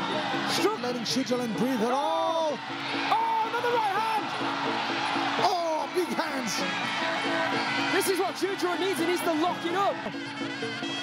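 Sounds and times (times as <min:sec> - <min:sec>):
crowd noise: 0:00.0 - 0:11.0
steady musical accompaniment: 0:00.0 - 0:11.0.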